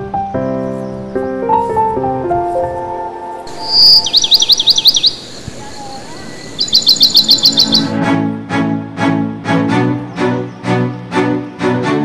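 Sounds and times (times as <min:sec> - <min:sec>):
background music: 0:00.0 - 0:05.2, 0:06.8 - 0:12.0
songbird chirping: 0:00.0 - 0:08.7, 0:09.3 - 0:12.0
bowed strings: 0:07.9 - 0:12.0.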